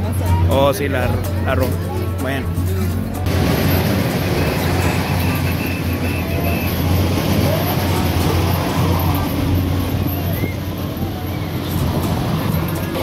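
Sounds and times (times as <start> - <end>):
fairground music: 0.0 - 8.5
low machine hum of ride: 0.0 - 13.0
voices: 0.0 - 13.0.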